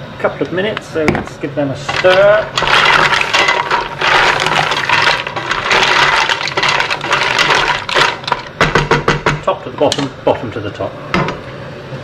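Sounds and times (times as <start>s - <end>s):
shells clattering in metal pan: 1.9s - 8.6s.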